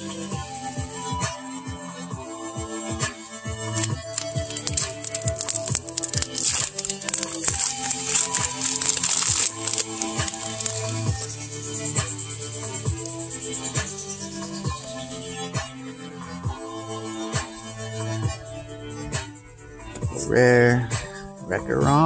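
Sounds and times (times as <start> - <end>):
background music: 0.0 - 22.0
foil wrapper crinkling and tearing: 3.8 - 11.3.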